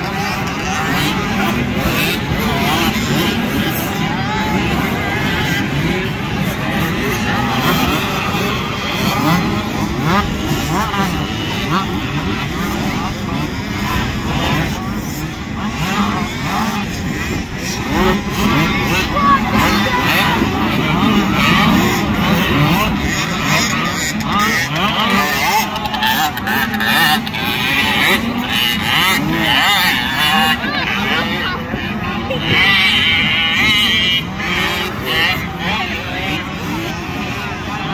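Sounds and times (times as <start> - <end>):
motocross bikes revving: 0.0 - 37.9.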